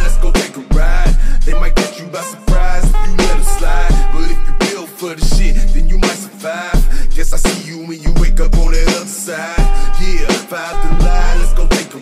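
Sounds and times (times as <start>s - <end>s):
deep sub-bass notes: 0.0s - 1.8s, 2.5s - 4.6s, 5.3s - 6.0s, 8.2s - 8.9s, 9.6s - 11.7s
rapping over a beat: 0.0s - 12.0s.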